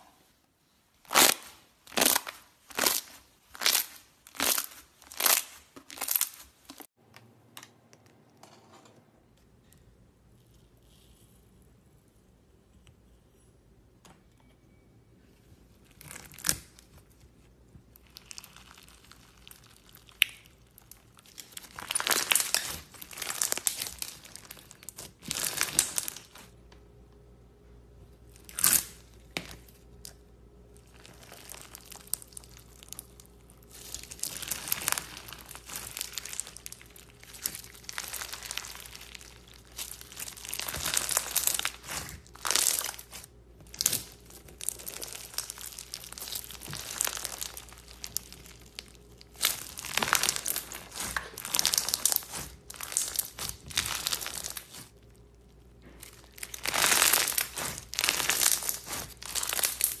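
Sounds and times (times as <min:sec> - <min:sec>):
slime crackling and popping: 0:01.0 - 0:06.9, 0:17.8 - 0:26.6, 0:29.9 - 1:00.0.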